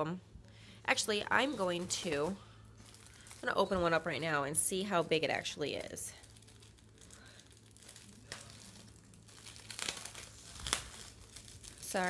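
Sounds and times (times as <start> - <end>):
packaging crinkling and rustling: 1.0 - 12.0.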